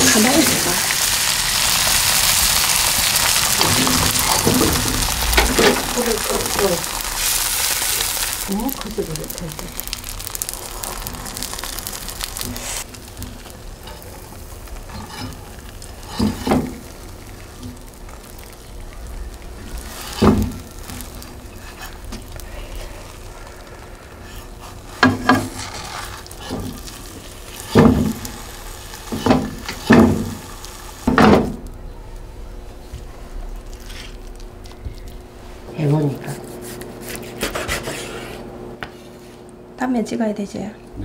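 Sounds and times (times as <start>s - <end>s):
food sizzling in oil: 0.0s - 37.4s.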